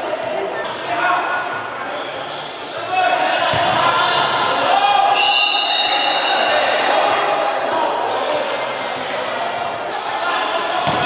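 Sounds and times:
people shouting in a gym: 0:00.0 - 0:11.0.

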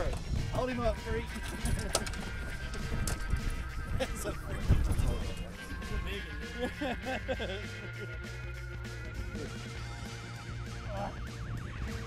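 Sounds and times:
wind rumbling on microphone: 0:00.0 - 0:06.3
background music: 0:00.0 - 0:12.0
person laughing or exclaiming: 0:06.6 - 0:08.1.

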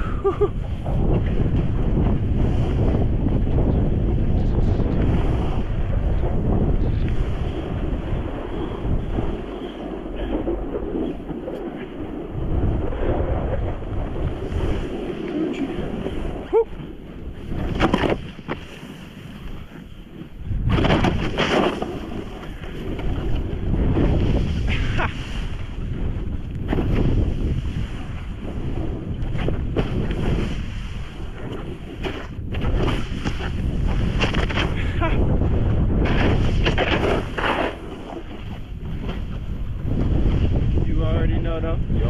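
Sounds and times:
snowboard sliding through snow: 0:00.0 - 0:42.0
wind buffeting camera microphone: 0:00.0 - 0:42.0.

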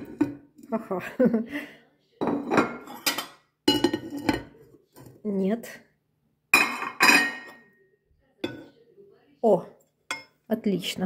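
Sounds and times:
sharp ceramic clinks: 0:02.2 - 0:04.5, 0:06.6 - 0:07.7.

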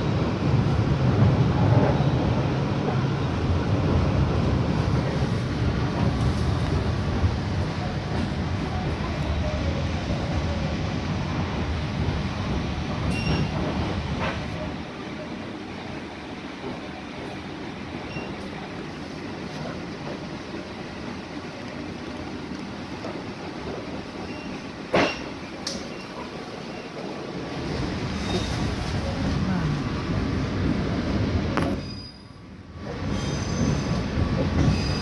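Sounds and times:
train wheels rumbling on rails: 0:00.0 - 0:35.0.

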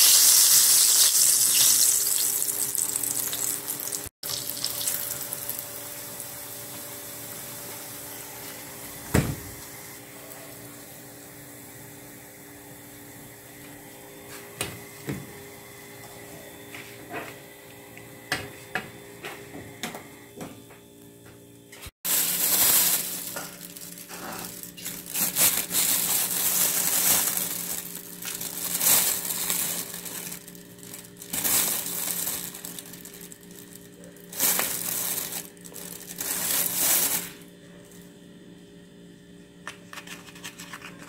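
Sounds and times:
plastic bag crinkling: 0:22.1 - 0:38.0.

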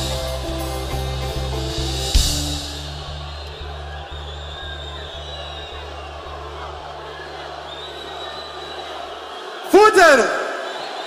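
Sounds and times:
concert crowd noise: 0:00.0 - 0:11.0.

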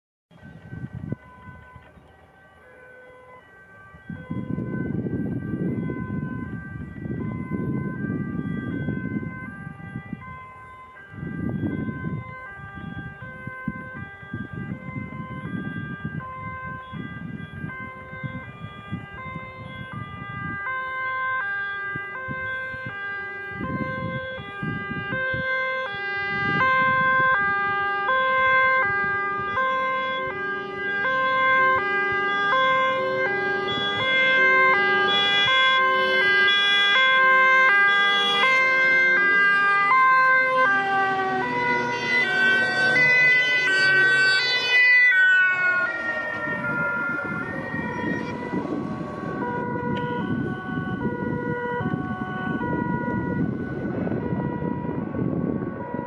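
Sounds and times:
diesel truck engines rumbling: 0:00.3 - 0:56.0
fire truck sirens: 0:00.3 - 0:56.0.

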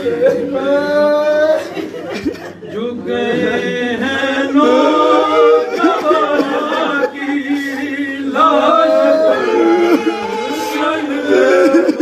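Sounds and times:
man chanting a lament: 0:00.0 - 0:12.0.

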